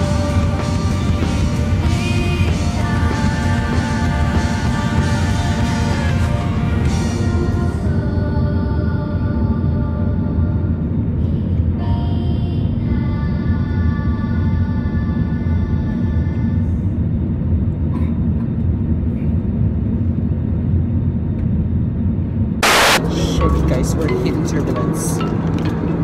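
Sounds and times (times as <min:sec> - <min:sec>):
background music with held tones: 0:00.0 - 0:10.8, 0:22.6 - 0:26.0
airplane cabin engine rumble: 0:00.0 - 0:26.0.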